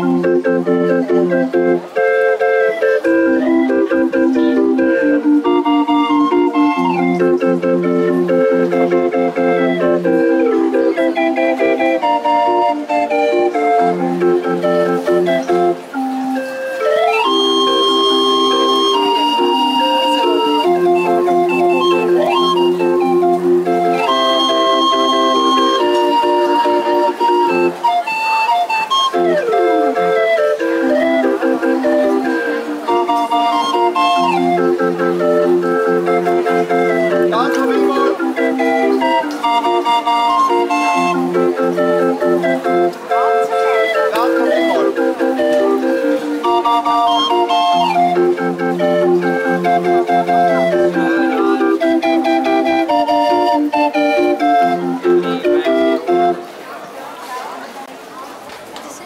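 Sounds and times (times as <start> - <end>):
barrel organ playing: 0.0 - 56.6.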